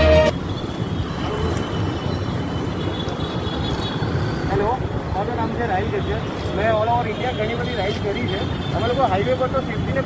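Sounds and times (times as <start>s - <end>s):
music: 0.0s - 0.3s
street traffic noise: 0.0s - 10.0s.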